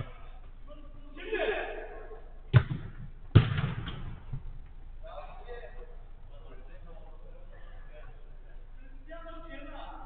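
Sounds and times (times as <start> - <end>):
football being struck: 2.5 - 4.5.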